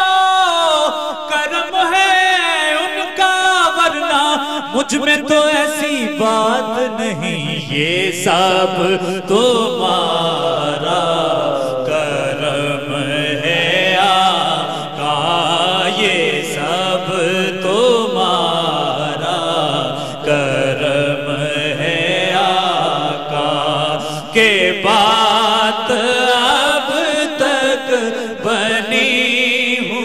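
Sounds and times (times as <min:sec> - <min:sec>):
solo male voice singing: 0:00.0 - 0:30.0.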